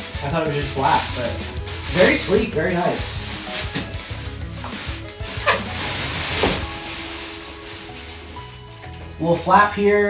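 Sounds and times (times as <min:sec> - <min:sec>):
plastic wrap crinkling: 0:00.0 - 0:09.5
background music: 0:00.0 - 0:10.0.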